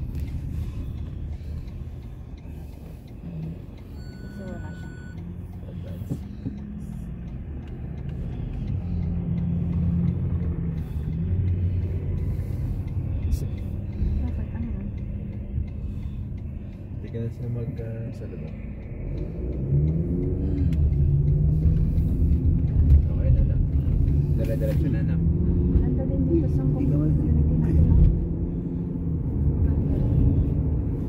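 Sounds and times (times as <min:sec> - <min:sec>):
car engine and tyre rumble: 0:00.0 - 0:31.0.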